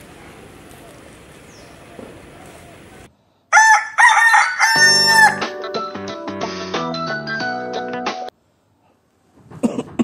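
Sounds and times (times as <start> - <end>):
rooster crowing: 3.5 - 5.4.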